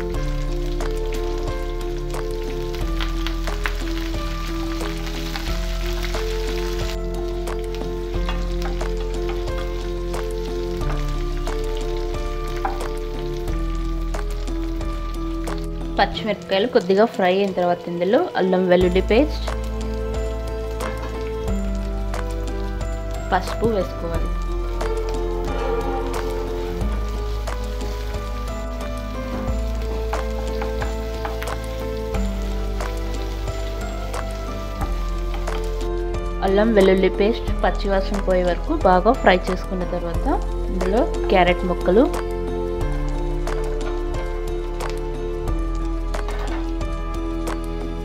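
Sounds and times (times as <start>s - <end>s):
background music: 0.0s - 48.0s
chillies sizzling in hot oil: 0.0s - 48.0s.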